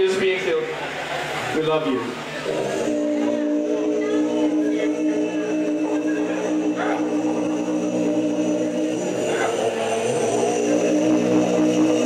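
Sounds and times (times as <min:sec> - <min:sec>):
rock band droning chord: 0:02.0 - 0:12.0.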